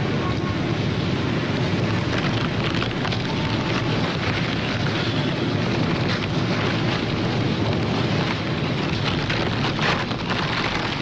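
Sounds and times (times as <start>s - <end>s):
low rumble: 0.0s - 11.0s
steady loud noise: 0.0s - 11.0s.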